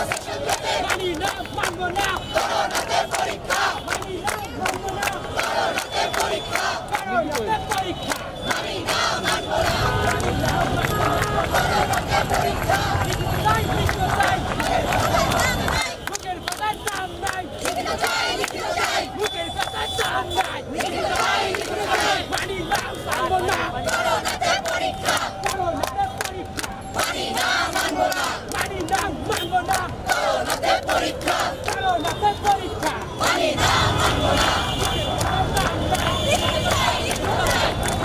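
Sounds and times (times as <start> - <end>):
crowd chanting slogans: 0.0 - 38.0.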